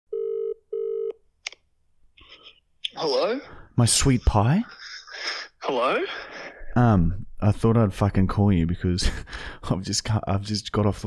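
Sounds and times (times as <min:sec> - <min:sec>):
telephone ringback tone: 0:00.1 - 0:01.1.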